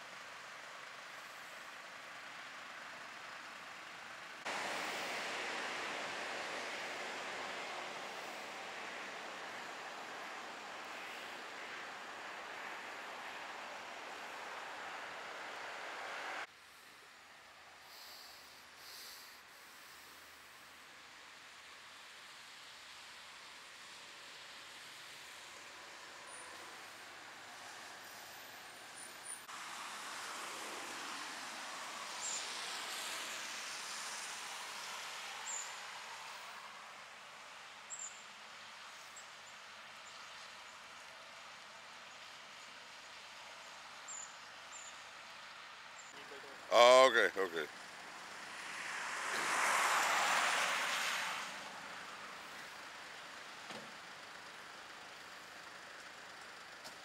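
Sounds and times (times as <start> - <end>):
outdoor hiss: 0.0 - 57.0
vehicle passing: 47.0 - 52.1.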